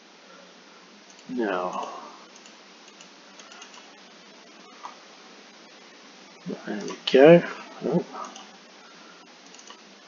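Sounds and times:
microphone hiss: 0.0 - 10.0
computer mouse clicks: 1.1 - 3.9, 8.2 - 8.5, 9.4 - 9.8.

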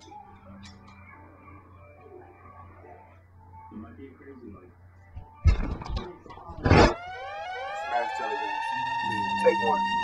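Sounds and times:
siren-like wail in hip-hop beat: 6.6 - 10.0.

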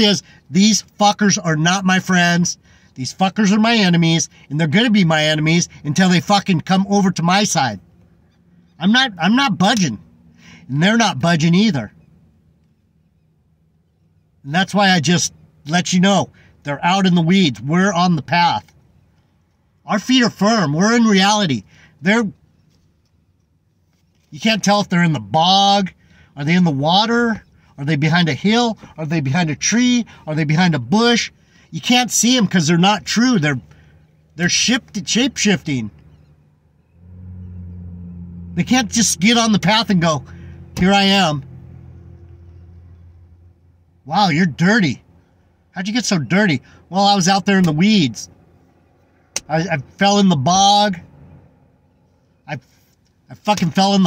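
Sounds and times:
faint low hum in car cabin: 0.0 - 54.0.

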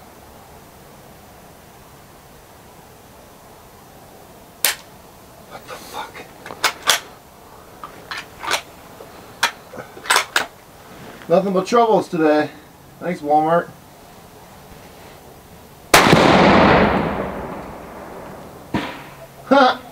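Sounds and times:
rifle bolt clicking and clacking: 6.5 - 7.1, 8.1 - 8.7.

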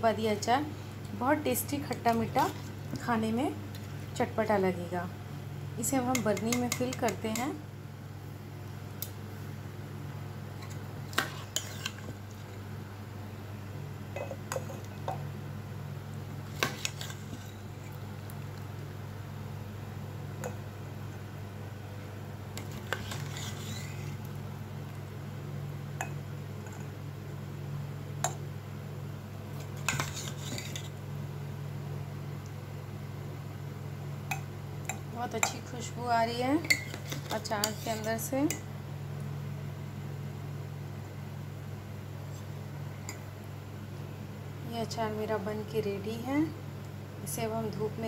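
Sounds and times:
steady low hum: 0.0 - 48.0
metal spoon clinking and scraping: 22.6 - 24.1, 36.6 - 38.6.

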